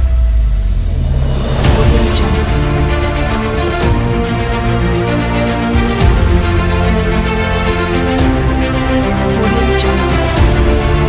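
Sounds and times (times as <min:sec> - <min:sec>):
deep bass boom: 0:00.0 - 0:05.2
rising whoosh: 0:00.0 - 0:08.1
trailer-style theme music: 0:00.0 - 0:11.0.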